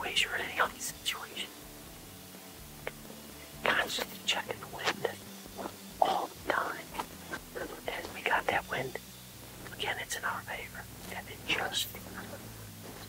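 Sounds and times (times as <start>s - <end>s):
man whispering: 0.0s - 1.5s, 3.6s - 5.2s, 6.0s - 9.0s, 9.6s - 12.5s.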